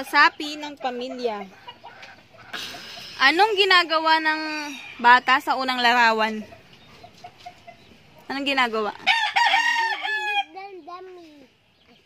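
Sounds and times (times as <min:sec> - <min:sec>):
rooster crowing: 0:09.0 - 0:10.5.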